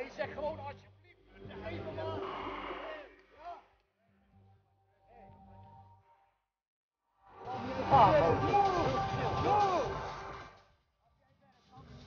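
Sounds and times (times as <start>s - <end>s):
man talking: 7.4s - 10.1s.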